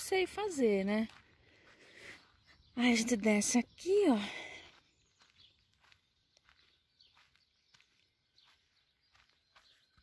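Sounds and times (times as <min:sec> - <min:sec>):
footsteps on grass: 0:00.0 - 0:10.0.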